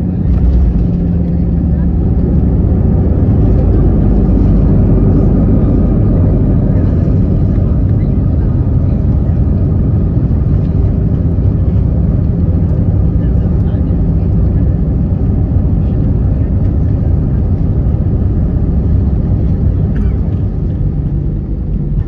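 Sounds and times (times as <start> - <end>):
aircraft engines rumbling: 0.0 - 22.0.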